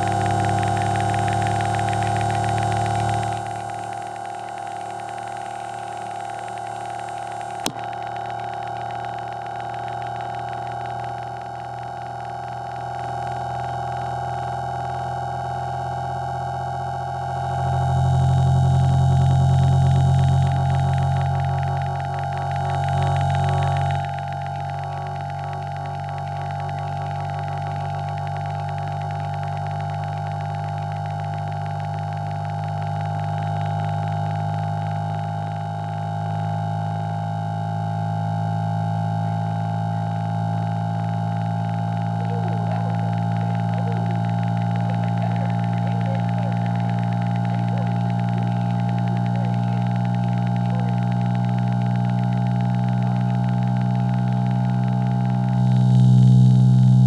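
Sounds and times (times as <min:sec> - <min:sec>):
low test tone hum: 0:00.0 - 0:57.0.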